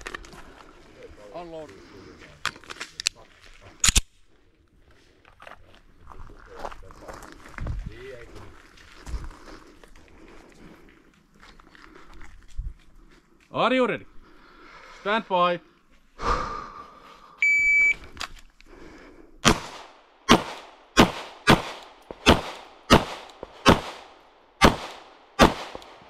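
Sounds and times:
footsteps on gravel: 0:05.3 - 0:13.5
gunshot: 0:19.4 - 0:26.0.

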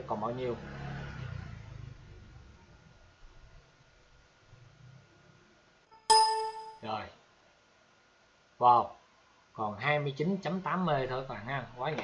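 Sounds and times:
computer notification ding: 0:06.0 - 0:06.8.

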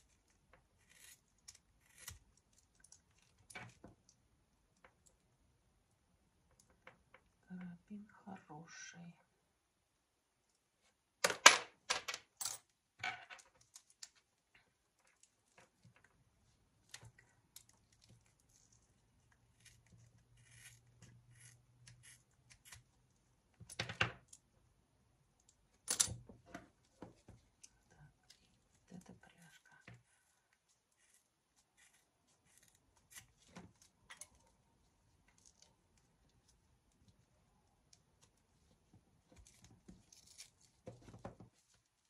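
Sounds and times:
scissors snipping leather: 0:00.8 - 0:03.0.

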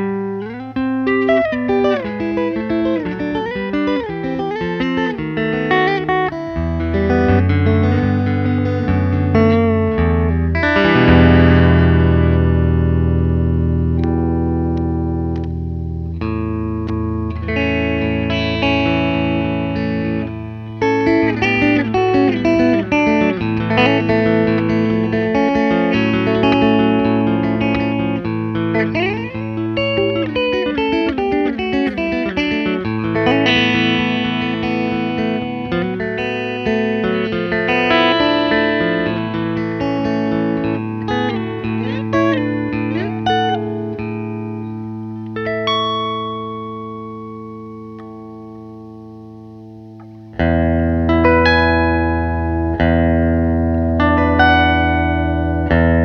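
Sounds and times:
electric guitar lead line: 0:00.0 - 0:56.0.

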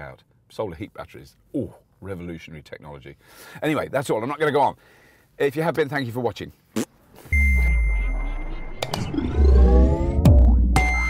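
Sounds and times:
electronic outro sting: 0:07.3 - 0:11.0.

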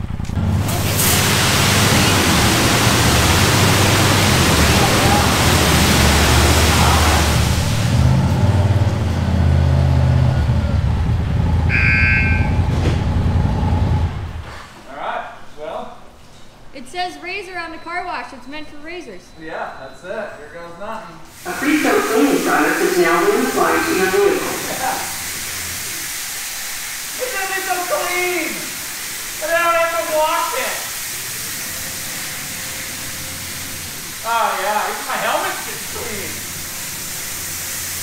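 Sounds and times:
low motor drone: 0:00.0 - 0:14.4
high-pressure water spray hissing: 0:00.5 - 0:08.8, 0:21.3 - 0:38.0
short electronic beep: 0:11.7 - 0:12.8.

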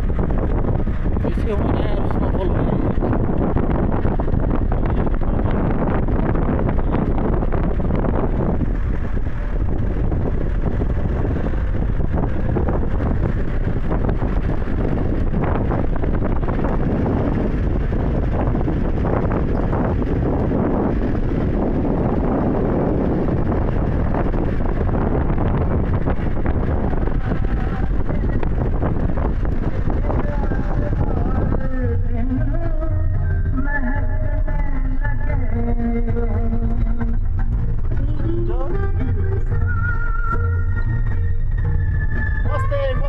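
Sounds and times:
road noise: 0:00.0 - 0:43.0
vehicle engine: 0:00.0 - 0:43.0
wind buffeting microphone: 0:00.0 - 0:43.0.

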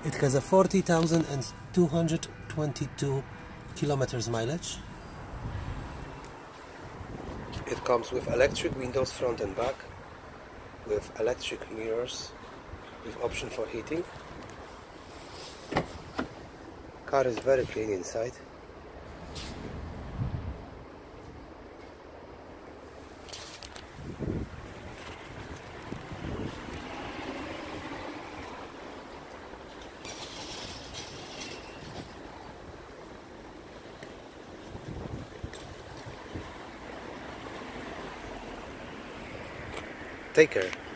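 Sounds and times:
wind rumble on microphone: 0:05.2 - 0:09.2, 0:19.2 - 0:21.5, 0:23.6 - 0:28.5, 0:30.6 - 0:36.8.

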